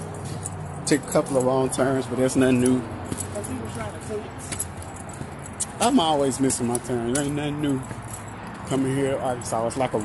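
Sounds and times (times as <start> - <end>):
phone handling clicks and jingling: 0.0 - 10.0.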